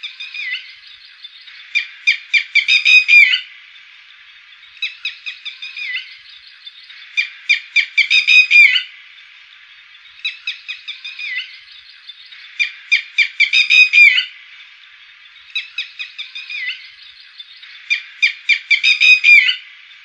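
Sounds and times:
faint steady hiss: 0.0 - 20.0
lapwing calling: 0.0 - 20.0.

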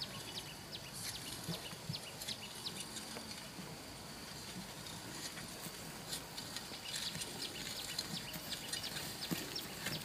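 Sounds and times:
small birds chirping: 0.0 - 3.6, 4.4 - 10.0
faint high insect drone: 0.0 - 10.0.

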